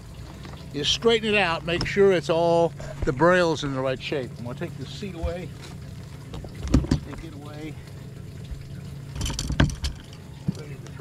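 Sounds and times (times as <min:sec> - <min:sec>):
seat clunks and knocks: 0:06.4 - 0:07.2.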